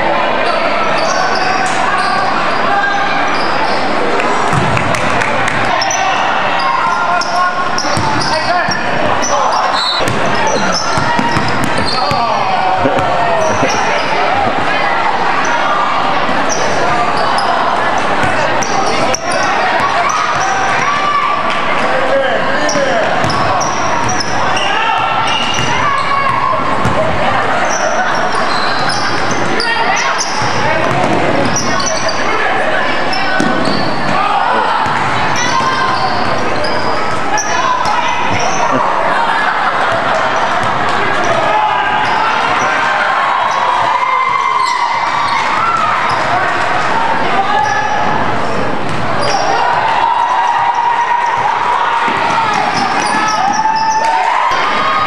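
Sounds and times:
crowd chatter: 0:00.0 - 0:55.0
sneakers squeaking: 0:00.2 - 0:21.8, 0:22.5 - 0:46.6, 0:47.5 - 0:49.9, 0:51.0 - 0:55.0.

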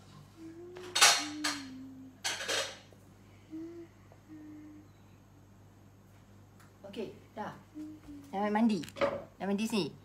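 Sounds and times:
person humming: 0:00.0 - 0:02.3, 0:03.3 - 0:05.3, 0:07.7 - 0:08.4.

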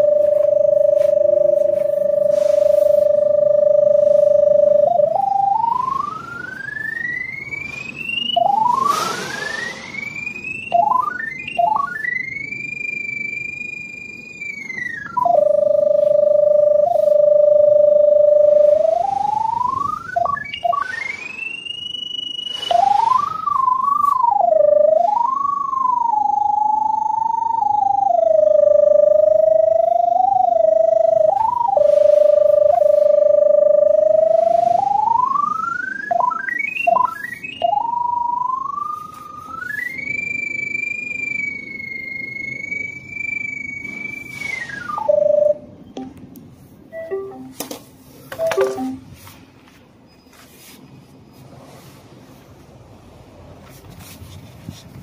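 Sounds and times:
electronic locator tone: 0:00.0 - 0:46.2, 0:46.8 - 0:47.7, 0:48.3 - 0:49.2.

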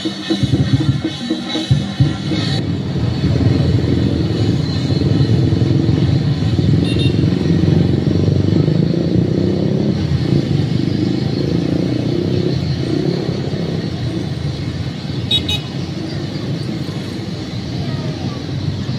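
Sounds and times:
motorcycles and scooters passing: 0:00.0 - 0:18.9.

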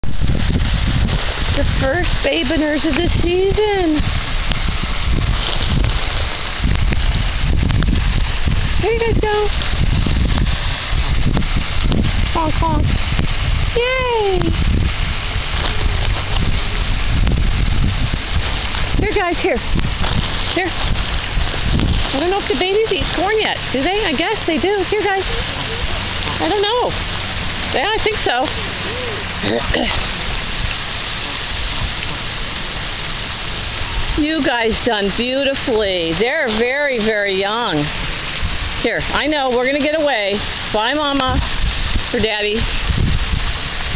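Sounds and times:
low rumble: 0:00.0 - 0:36.9
wind buffeting microphone: 0:00.0 - 0:43.9
even hiss: 0:00.2 - 0:43.9.

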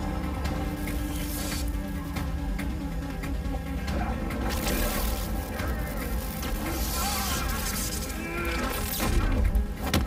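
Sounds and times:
film score music: 0:00.0 - 0:10.0
electricity buzzing and crackling: 0:04.2 - 0:09.7.

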